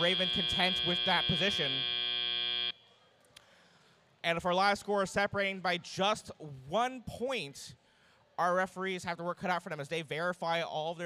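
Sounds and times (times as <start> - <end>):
buzzer tone: 0.0 - 2.8.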